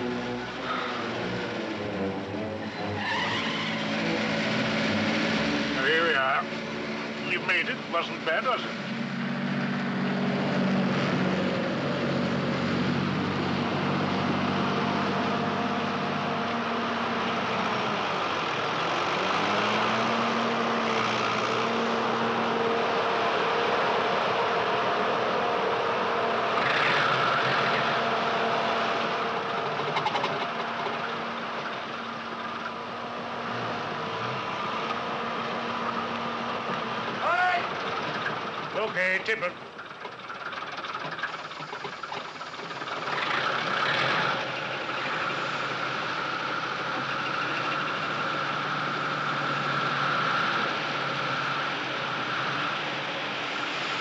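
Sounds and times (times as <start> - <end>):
lorry engine running: 3.8 - 54.0.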